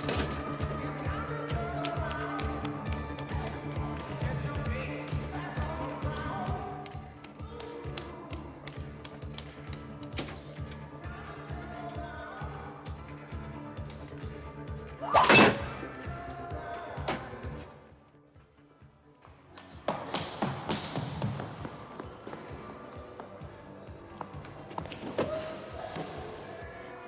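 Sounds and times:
running footsteps on hard floor: 19.2s - 25.4s.

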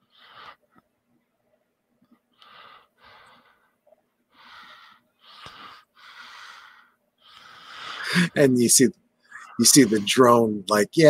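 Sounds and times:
person breathing close to microphone: 2.4s - 8.4s.

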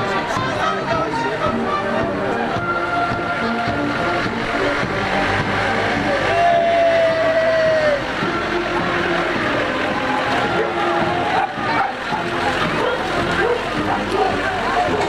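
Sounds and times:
crowd chatter: 0.0s - 15.0s
music: 0.0s - 15.0s
vehicle engine passing by: 3.4s - 6.8s.

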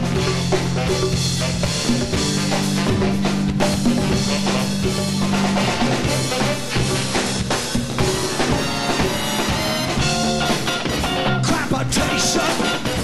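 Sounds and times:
drum kit beat: 0.0s - 13.0s
live band playing: 0.0s - 13.0s.

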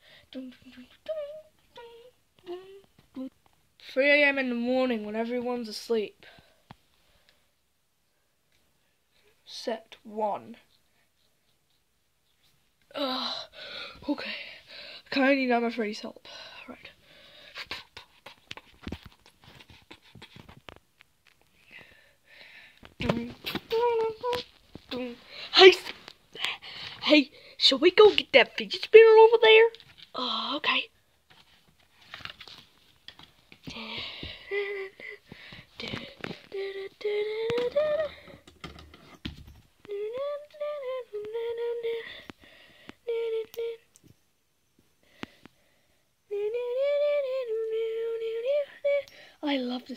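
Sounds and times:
person humming: 0.4s - 3.4s, 33.7s - 35.2s, 35.8s - 38.5s, 39.8s - 42.3s, 43.0s - 43.9s
soft handling taps and rustles: 18.2s - 21.9s.

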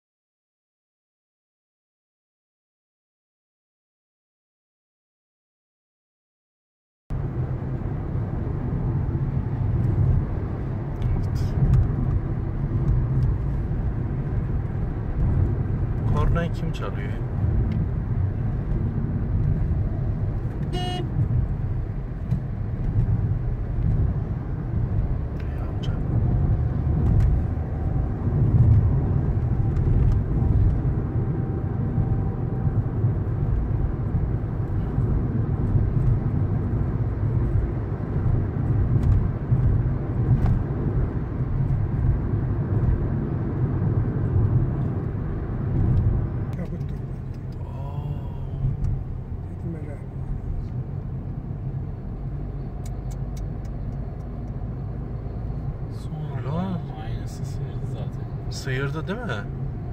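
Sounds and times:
car road and engine noise: 7.1s - 59.9s.

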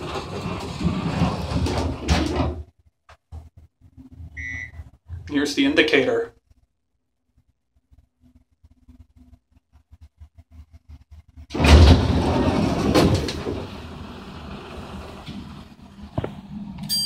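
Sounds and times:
elevator doors sliding open: 0.0s - 2.7s, 11.5s - 16.8s.

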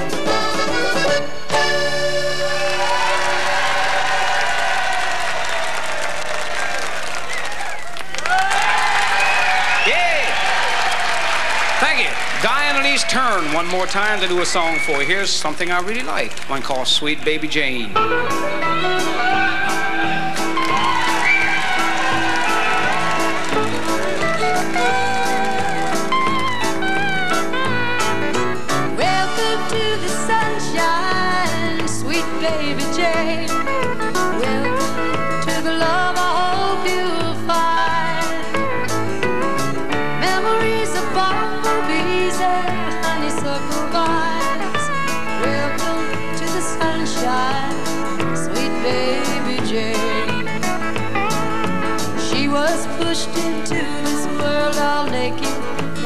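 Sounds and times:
country band playing: 0.0s - 4.9s, 9.2s - 56.0s
audience applauding: 2.4s - 17.5s, 19.4s - 27.4s.

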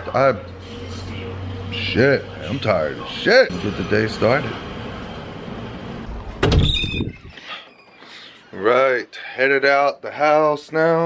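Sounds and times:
brief high squeak: 6.6s - 8.1s.

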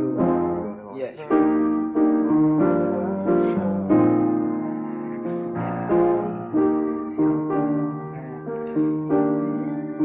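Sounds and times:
person singing faintly: 0.0s - 1.6s, 2.6s - 10.0s
piano chords: 0.0s - 10.0s.

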